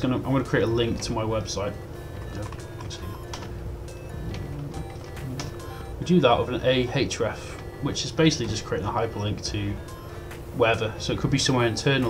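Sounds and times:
soft background music: 0.0s - 12.0s
computer keyboard clicks: 2.2s - 3.5s.

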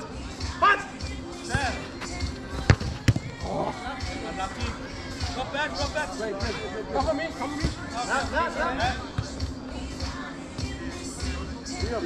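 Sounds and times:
football being kicked: 1.5s - 1.8s, 2.5s - 3.5s, 9.1s - 9.4s.

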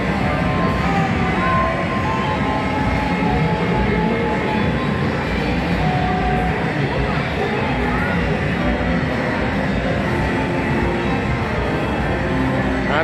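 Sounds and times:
kiddie ride rumble: 0.0s - 13.0s.

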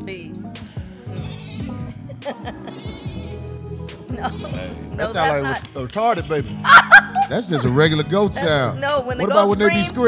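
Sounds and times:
music beat: 0.0s - 10.0s
goat bleating from phone: 1.2s - 1.8s.

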